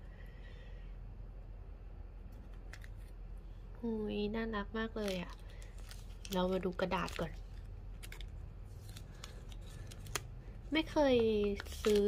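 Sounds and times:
woman speaking: 3.8 - 5.4, 6.2 - 7.4, 10.7 - 12.0
paper leaflet being unfolded: 11.4 - 12.0.

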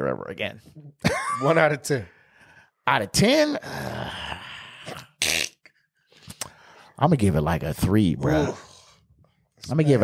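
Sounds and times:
man's drawn-out vocal hesitation: 8.1 - 8.9.

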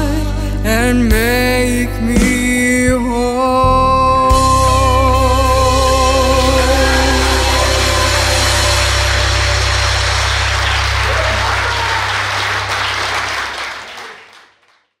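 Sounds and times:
low held note: 5.2 - 13.5
congregation applauding: 5.7 - 15.0.

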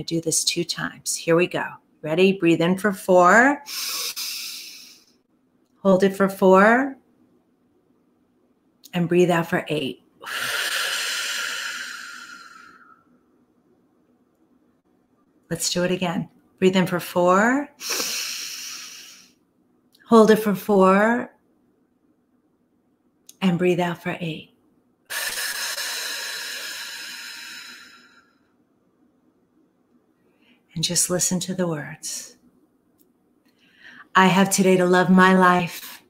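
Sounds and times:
woman exhaling through pursed lips: 17.8 - 19.4.

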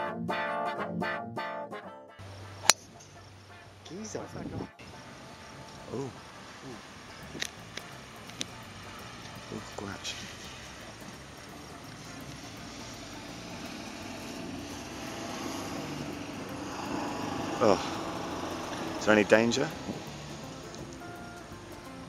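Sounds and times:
engine drone: 4.8 - 22.0
faint clicks: 7.2 - 9.4.

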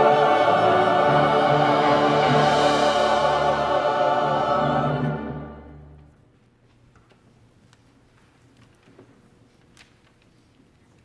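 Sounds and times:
church choir singing: 0.0 - 6.0
instrumental accompaniment: 0.0 - 6.1.

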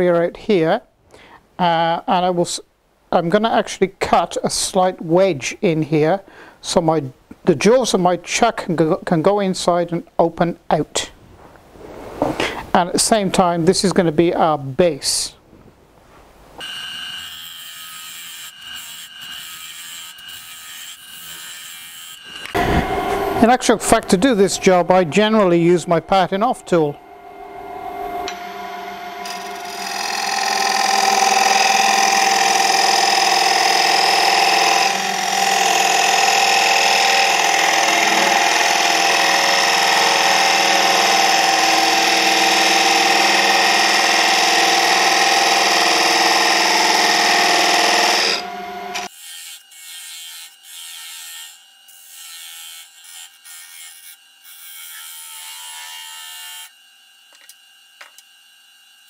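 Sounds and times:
lathe whine: 22.3 - 49.1
tool scraping spinning wood: 28.2 - 49.1.

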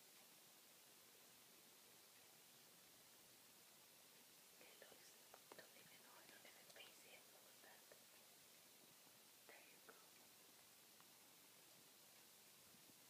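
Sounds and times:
faint whispering: 4.6 - 8.3, 9.4 - 10.3.

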